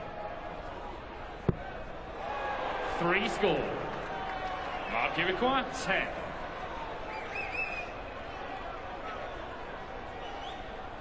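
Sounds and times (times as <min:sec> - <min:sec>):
arena background noise: 0:00.0 - 0:11.0.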